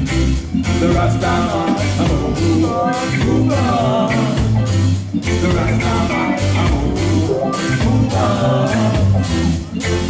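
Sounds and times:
deep bass line: 0.0 - 10.0
reggae band playing: 0.0 - 10.0.

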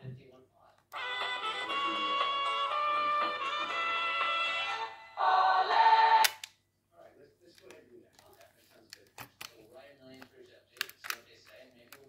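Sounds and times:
music from small cassette speaker: 0.9 - 6.4.

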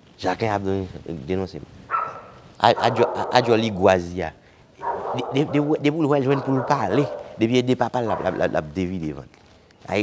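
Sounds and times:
man making wordless vocal sounds: 5.0 - 9.0.

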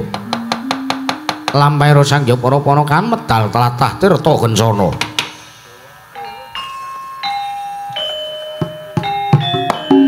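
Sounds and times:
metallophone notes ringing: 4.0 - 10.0.

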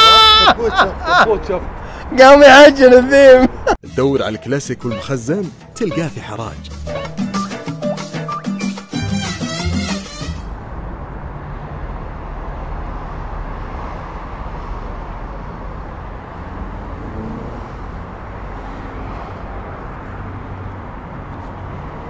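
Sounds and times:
vehicles rumbling and hissing: 0.5 - 3.8, 9.5 - 22.0.

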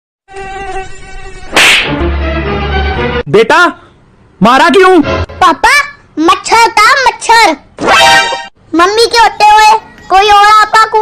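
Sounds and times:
slap on a face: 1.5 - 2.0.

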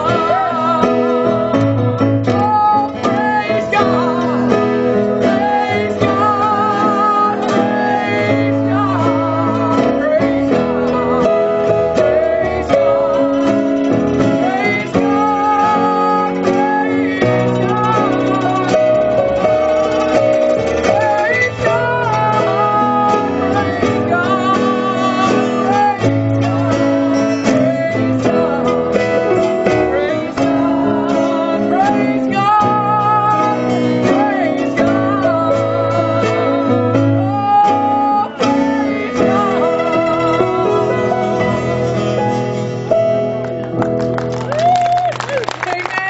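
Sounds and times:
woman singing with vibrato: 0.0 - 42.6
acoustic guitar: 0.0 - 46.0
electric keyboard: 0.0 - 46.0.

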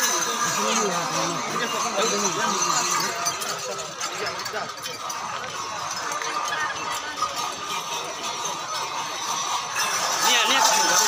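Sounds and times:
outdoor crowd talking and calling: 0.0 - 11.0.

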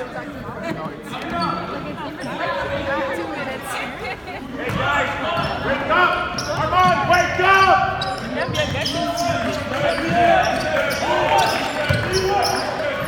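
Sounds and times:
voices echoing in hall: 0.0 - 13.0
sneakers squeaking: 0.8 - 2.9, 4.6 - 13.0
basketball bouncing: 11.8 - 12.3.

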